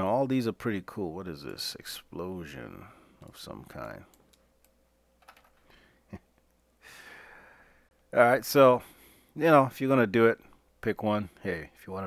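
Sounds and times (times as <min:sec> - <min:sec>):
faint room hum: 0:00.0 - 0:12.0
computer clicks: 0:04.1 - 0:05.6.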